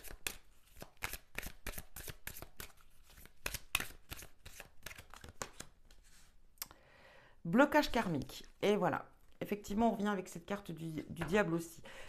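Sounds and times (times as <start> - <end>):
cards being shuffled by hand: 0.0 - 6.3.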